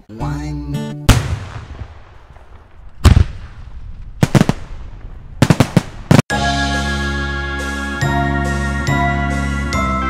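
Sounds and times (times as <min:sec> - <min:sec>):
deep heavy boom: 0:01.1 - 0:06.2
sharp bangs: 0:01.1 - 0:06.2.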